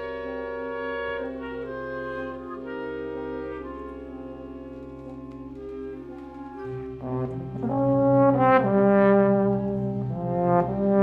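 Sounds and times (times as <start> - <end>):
wind ensemble playing chords: 0.0 - 11.0.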